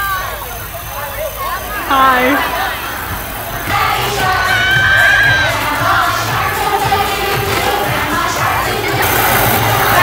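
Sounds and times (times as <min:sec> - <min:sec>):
children calling out and talking: 0:00.0 - 0:05.6.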